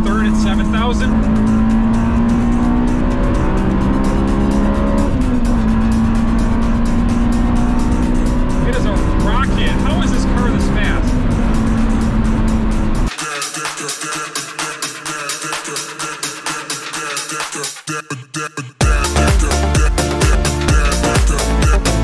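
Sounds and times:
car engine droning at cruise: 0:00.0 - 0:13.1
road noise: 0:00.0 - 0:13.1.

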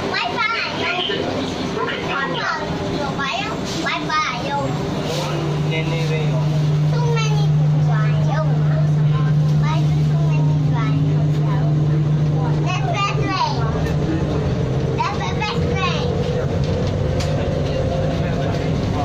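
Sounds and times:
passengers talking: 0:00.0 - 0:19.0
train running on track: 0:00.0 - 0:19.0.

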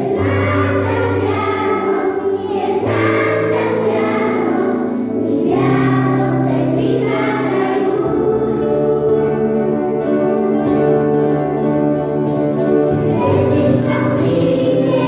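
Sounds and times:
children's choir singing: 0:00.0 - 0:15.0
guitar accompaniment: 0:00.0 - 0:15.0.

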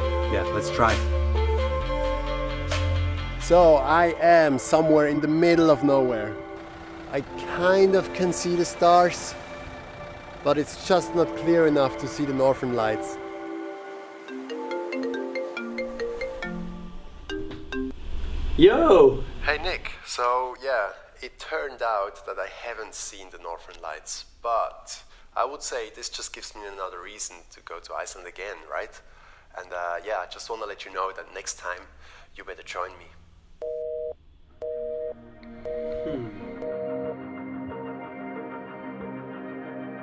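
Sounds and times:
marimba-like phone ringtone: 0:14.3 - 0:18.0, 0:33.6 - 0:37.2
telephone busy tone beeps: 0:33.6 - 0:37.2.

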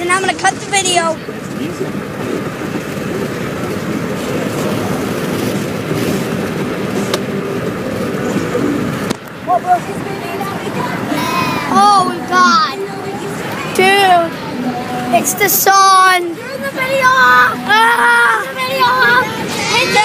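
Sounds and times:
road noise inside car: 0:00.0 - 0:20.0
indistinct voices: 0:07.6 - 0:20.0.

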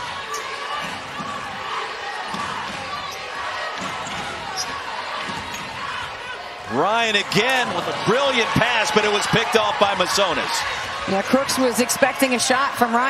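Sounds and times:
murmur of arena crowd: 0:00.0 - 0:13.0.

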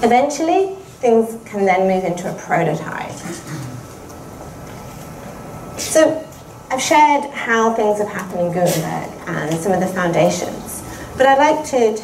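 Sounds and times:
woman speaking: 0:00.0 - 0:03.6, 0:05.8 - 0:12.0.

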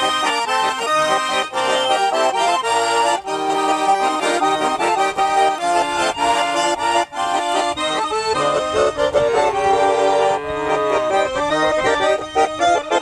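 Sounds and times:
button accordion folk tune: 0:00.0 - 0:13.0.

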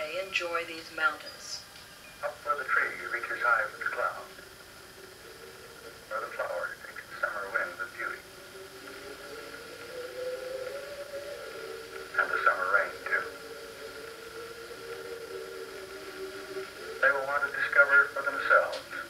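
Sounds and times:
sustained music notes: 0:01.9 - 0:19.0
narrator speaking: 0:06.1 - 0:08.2, 0:12.2 - 0:13.4, 0:17.0 - 0:19.0.

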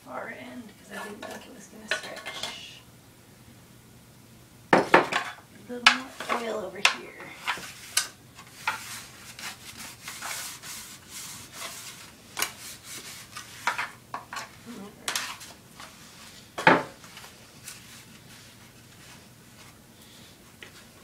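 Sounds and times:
hands rubbing dough: 0:07.3 - 0:21.0.

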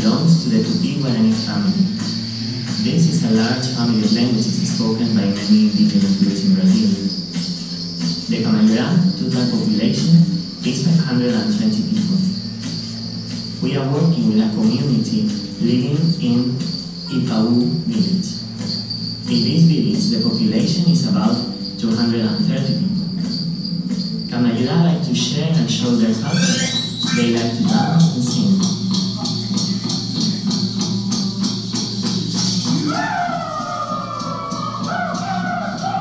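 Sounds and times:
men talking: 0:00.0 - 0:07.4, 0:08.3 - 0:12.4, 0:13.6 - 0:18.5, 0:19.3 - 0:23.0, 0:24.3 - 0:30.6
insects chirping: 0:00.0 - 0:36.0.

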